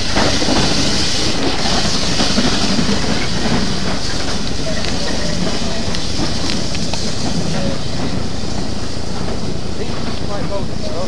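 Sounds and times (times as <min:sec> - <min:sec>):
train coaches rumbling past: 0:00.0 - 0:11.0
wheels clicking over rail joints: 0:00.0 - 0:11.0.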